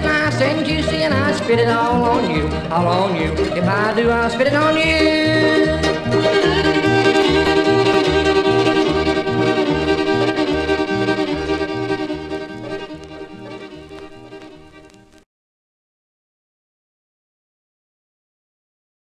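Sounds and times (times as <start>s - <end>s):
bluegrass band playing: 0.0s - 15.2s
fiddle: 0.0s - 15.2s.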